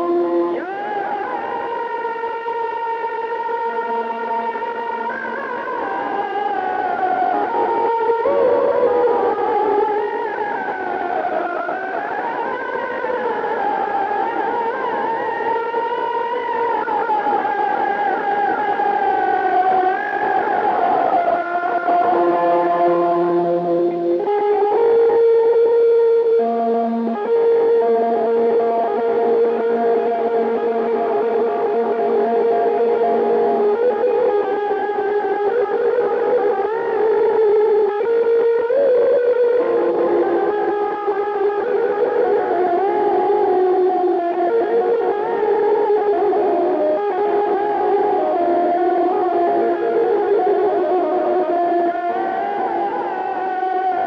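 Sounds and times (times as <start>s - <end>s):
electric guitar melody with echo: 0.0s - 54.0s.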